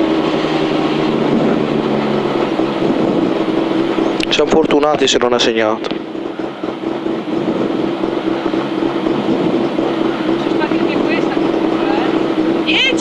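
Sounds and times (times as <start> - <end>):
car engine running steadily: 0.0 - 13.0.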